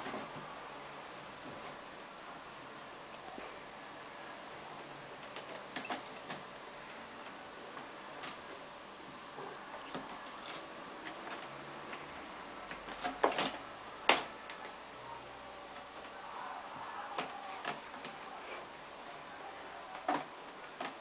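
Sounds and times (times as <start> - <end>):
low steady hiss: 0.0 - 21.0.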